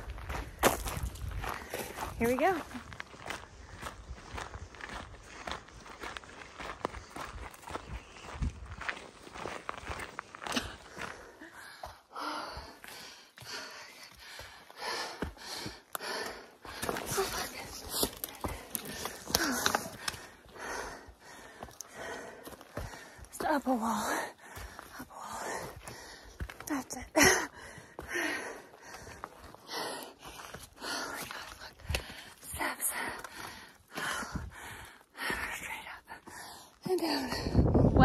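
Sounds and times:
footsteps on dirt and rock: 0:00.0 - 0:38.0
loud breathing: 0:10.5 - 0:23.3, 0:23.9 - 0:26.5, 0:27.2 - 0:35.5.

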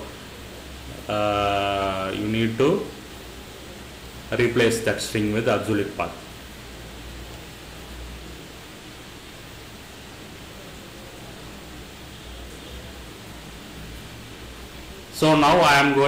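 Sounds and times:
microphone hiss: 0:00.0 - 0:16.0.

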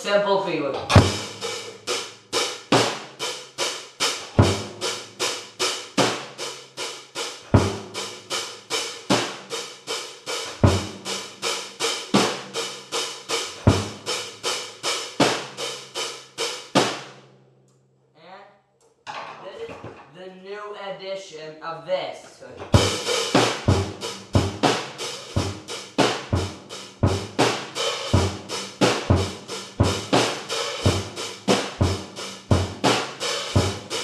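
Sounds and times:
drum kit steady beat: 0:00.7 - 0:17.2, 0:22.6 - 0:34.0
bass drum hits: 0:22.8 - 0:34.0.

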